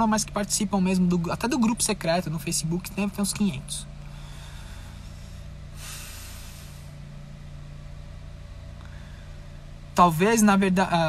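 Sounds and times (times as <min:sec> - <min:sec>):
car idling hum: 0:00.0 - 0:11.0
even hiss: 0:04.1 - 0:07.0.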